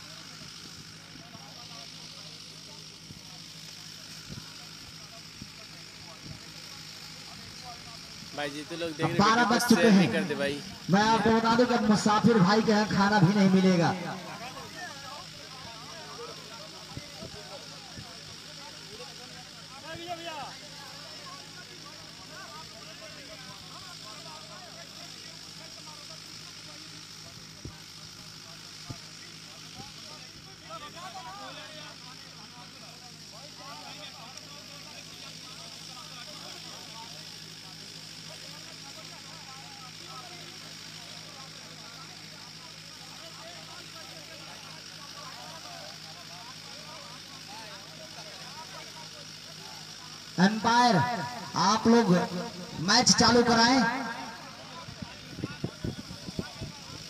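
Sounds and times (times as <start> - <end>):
low mechanical hum: 0.0 - 57.0
men talking indistinctly: 7.1 - 26.2, 49.8 - 57.0.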